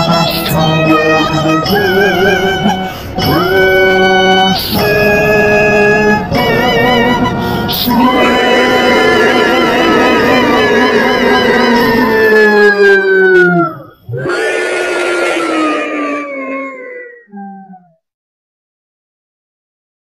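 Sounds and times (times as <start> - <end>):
pitch-shifted cartoon singing voice: 0.0 - 18.0.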